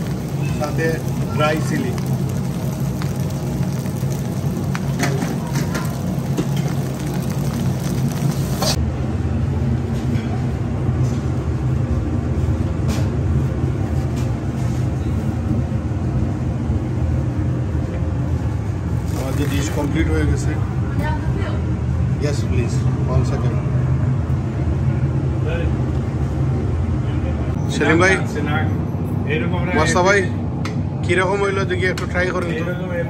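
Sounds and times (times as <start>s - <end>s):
kitchen machinery humming: 0.0s - 9.3s, 18.0s - 25.4s.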